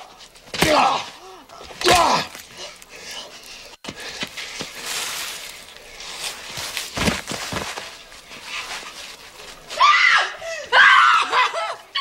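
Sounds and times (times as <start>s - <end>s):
people screaming: 9.8s - 12.0s.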